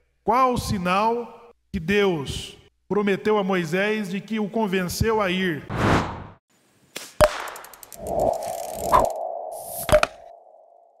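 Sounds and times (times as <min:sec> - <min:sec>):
high whoosh: 0:08.0 - 0:10.6.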